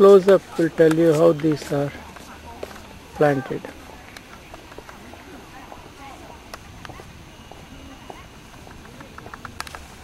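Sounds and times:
background chatter of people: 0.0s - 10.0s
outdoor ambience: 0.0s - 10.0s.

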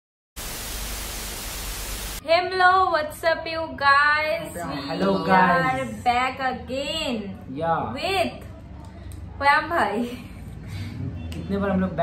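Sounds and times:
tv static hiss: 0.4s - 2.2s.

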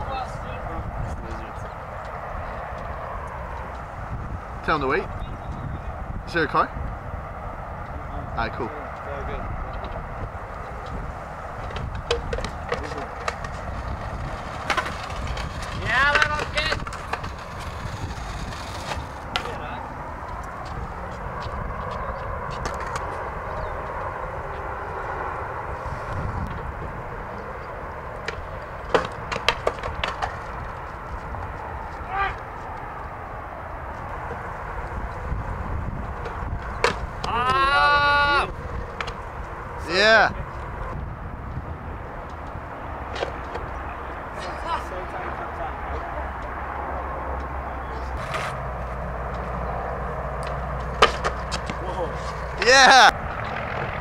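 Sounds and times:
voices calling out: 7.5s - 29.3s, 31.0s - 41.0s, 41.9s - 53.9s
skateboard clacking on concrete: 11.6s - 19.6s, 22.5s - 23.1s, 28.2s - 31.6s, 36.2s - 37.6s, 38.9s - 39.3s, 48.1s - 48.6s, 50.4s - 53.1s.

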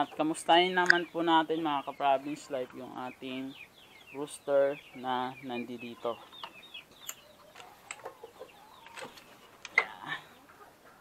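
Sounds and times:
chicken clucks: 0.0s - 11.0s.

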